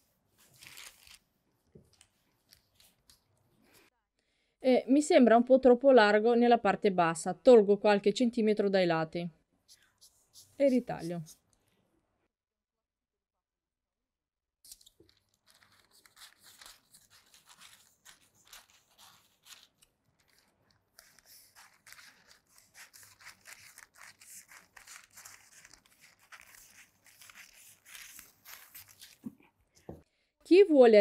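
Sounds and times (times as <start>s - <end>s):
scissors snipping paper: 14.7s - 29.3s.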